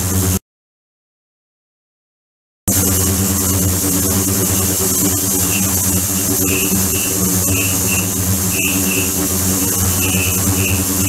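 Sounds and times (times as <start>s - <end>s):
loud buzzing hum: 0.0s - 0.4s, 2.7s - 11.0s
high hiss: 2.7s - 11.0s
high-pitched chirps: 5.5s - 11.0s.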